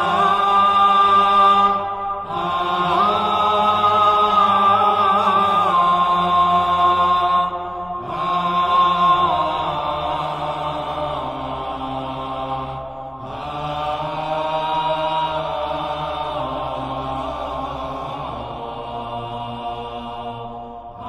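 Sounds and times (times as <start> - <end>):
sacred chanting: 0.0 - 21.0.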